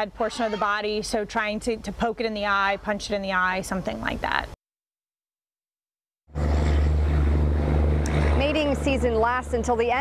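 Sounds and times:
loud steady low hum: 6.3 - 10.0.

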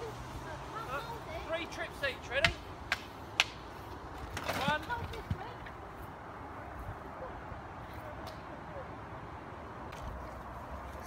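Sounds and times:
voices talking: 0.0 - 9.6.

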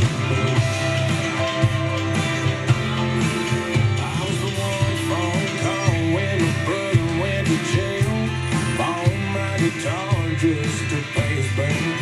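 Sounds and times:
country song on radio speakers: 0.0 - 12.0.

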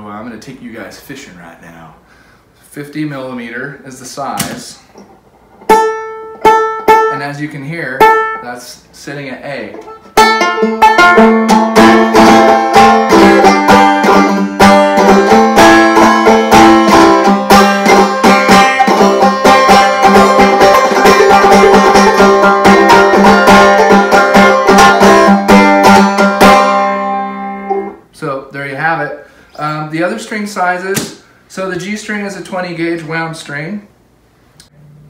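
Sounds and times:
banjo plucked tune: 5.0 - 8.5, 9.5 - 28.0.

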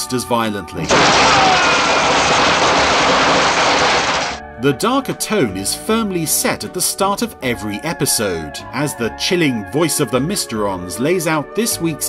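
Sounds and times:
rushing hiss of sparks: 0.9 - 4.4.

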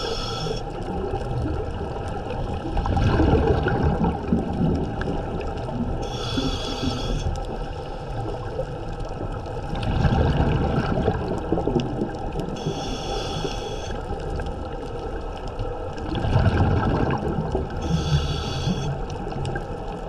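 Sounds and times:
hissing regulator inhale: 0.0 - 0.7, 6.0 - 8.2, 12.6 - 14.0, 17.8 - 19.0
rumbling exhaled bubbles: 0.7 - 12.8, 14.0 - 20.0.

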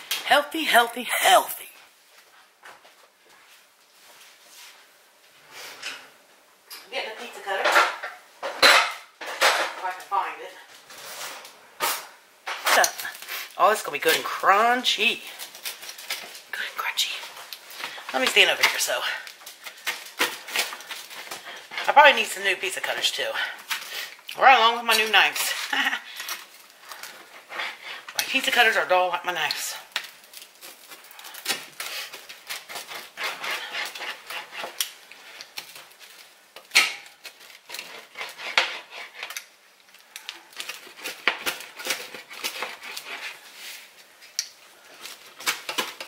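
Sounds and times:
pizza cutter crunching crust: 12.6 - 24.1, 25.0 - 46.0
pizza cutter scraping metal pan: 31.8 - 35.4, 37.6 - 39.4, 40.7 - 43.5
cutter scraping metal pan: 32.6 - 34.9, 37.7 - 39.4.

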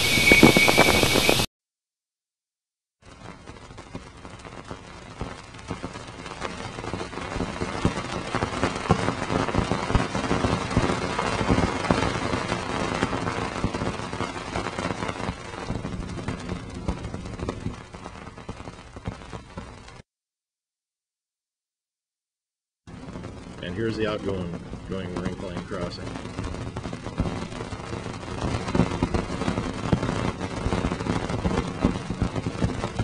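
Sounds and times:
dense crackle of pops: 3.0 - 20.0, 22.9 - 33.0.

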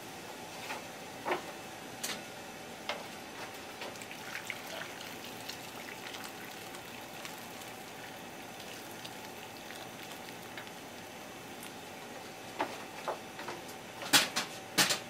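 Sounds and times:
boiling water poured into metal bowl: 3.7 - 12.5.

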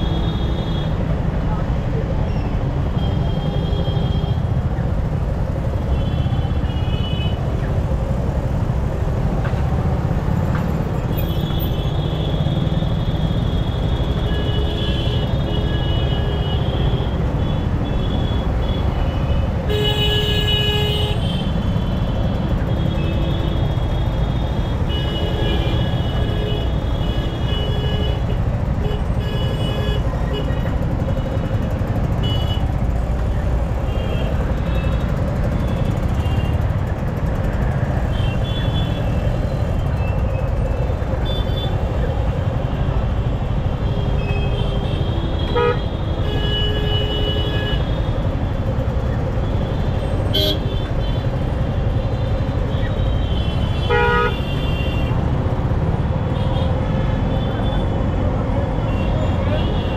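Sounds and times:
low rumble of engines: 0.0 - 59.9
vehicle horns honking: 44.2 - 48.0, 50.3 - 51.3, 52.8 - 55.2.

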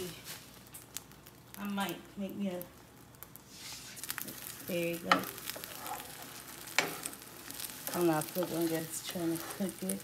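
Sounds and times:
eggs sizzling in a frying pan: 0.0 - 10.0.

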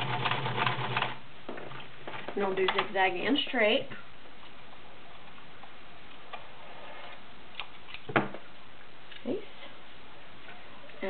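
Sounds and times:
sewing machine whirring: 0.0 - 1.2.

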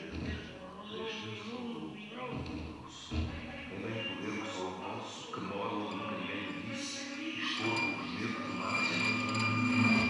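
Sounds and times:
sustained drone tones: 5.6 - 10.0.

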